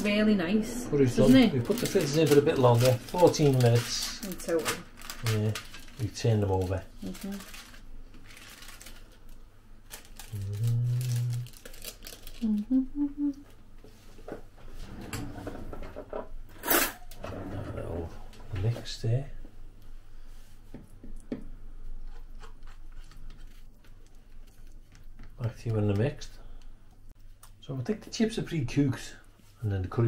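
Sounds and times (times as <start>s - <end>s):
plastic film crinkling: 1.2s - 12.7s
person humming: 10.3s - 11.6s, 12.4s - 13.5s.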